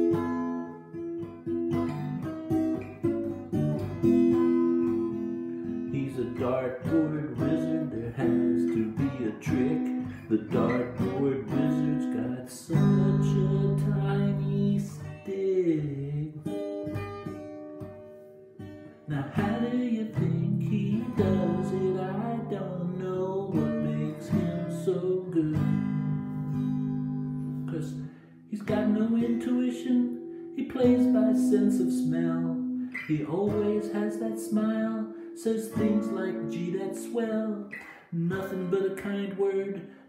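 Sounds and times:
acoustic guitar strumming: 0.0 - 40.0
man singing: 5.8 - 16.7, 19.1 - 26.2, 27.6 - 40.0.

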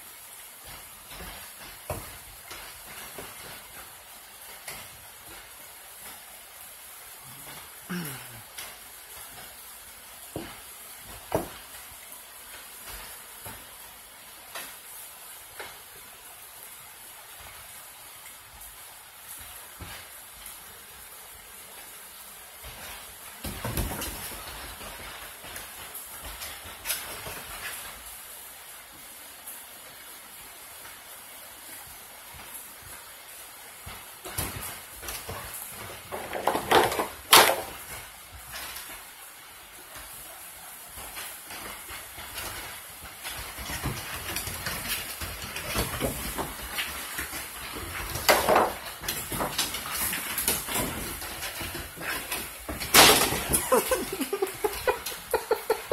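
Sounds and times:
dogs scuffling on wooden deck: 0.0 - 55.9
rain hiss: 0.0 - 55.9.

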